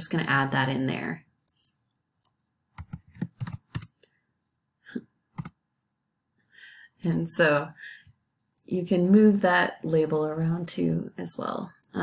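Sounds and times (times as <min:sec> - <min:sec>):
typing on computer keyboard: 0:02.8 - 0:04.0, 0:05.4 - 0:05.6.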